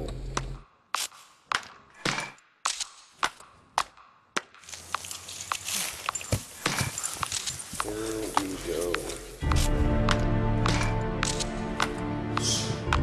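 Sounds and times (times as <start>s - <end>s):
scattered clicks: 10.1s - 12.0s.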